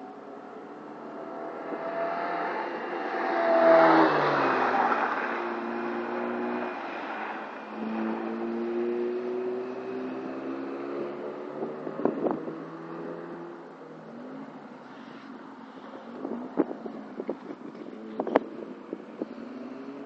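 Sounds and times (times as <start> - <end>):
car engine passing at speed: 0.4 - 14.8, 15.7 - 20.0.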